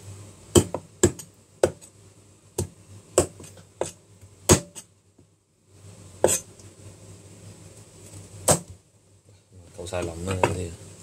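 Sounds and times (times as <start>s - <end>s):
cleaver chopping on cutting board: 0.5s - 1.9s, 2.6s - 4.9s, 6.2s - 6.4s.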